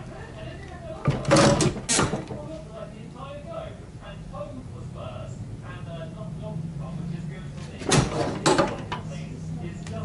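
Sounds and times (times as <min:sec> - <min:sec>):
heat press clattering shut: 0:07.8 - 0:09.0.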